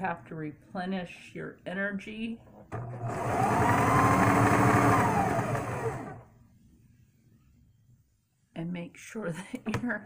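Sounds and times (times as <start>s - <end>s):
electric sewing machine stitching: 2.7s - 6.3s.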